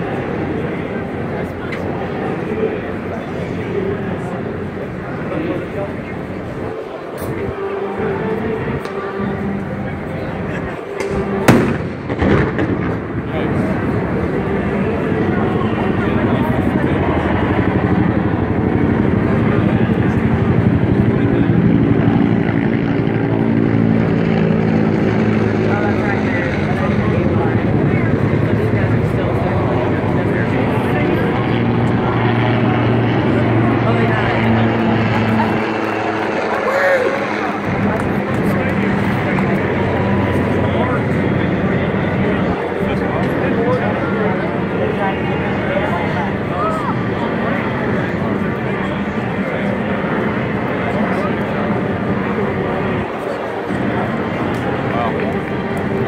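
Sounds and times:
heavy engine drone: 0:00.0 - 0:56.0
loud bang: 0:11.0 - 0:13.3.

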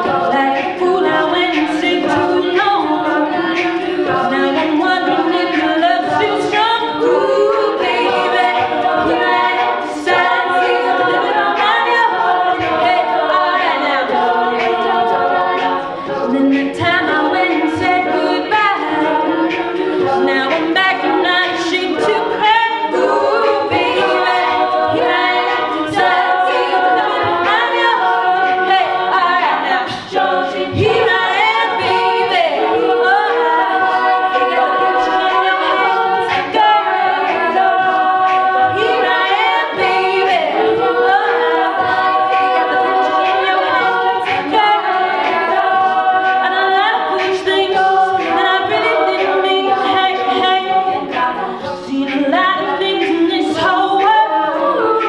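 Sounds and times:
backing voices in harmony: 0:00.0 - 0:55.0.

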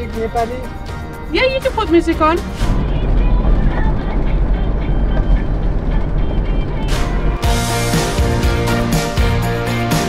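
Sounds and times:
music on car stereo: 0:00.0 - 0:10.0
car driving low rumble: 0:01.7 - 0:07.7.

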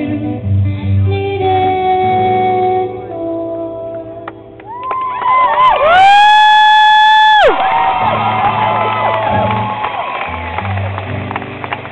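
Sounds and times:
loud whoop into a high note: 0:04.7 - 0:10.9
audience cheering and whooping: 0:04.7 - 0:11.9.

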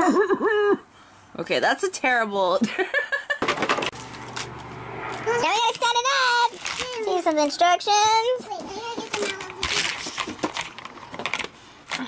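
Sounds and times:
packaging rustling and tearing: 0:03.9 - 0:07.6, 0:09.0 - 0:12.0
child speaking: 0:05.2 - 0:10.2.

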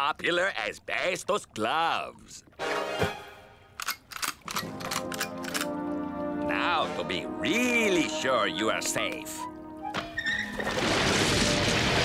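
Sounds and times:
background music: 0:02.6 - 0:12.0.

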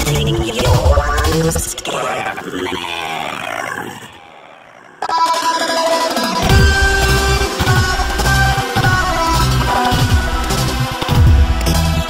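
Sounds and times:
slowed deep-pitched vocal: 0:00.1 - 0:10.8
music: 0:05.2 - 0:12.0.

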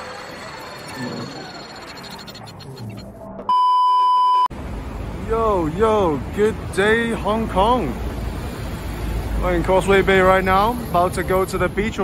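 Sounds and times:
electronic test-tone beep: 0:00.0 - 0:04.5
mixed background sound: 0:00.0 - 0:06.8.

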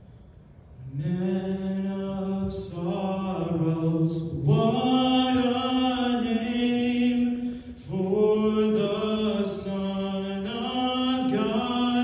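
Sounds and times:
man singing into microphone: 0:00.9 - 0:12.0.

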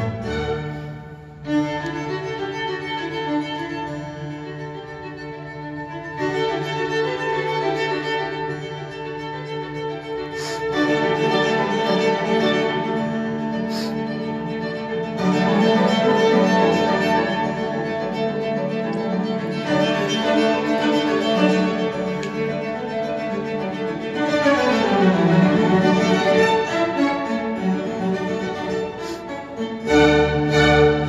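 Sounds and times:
violin and cello music: 0:00.0 - 0:31.0.

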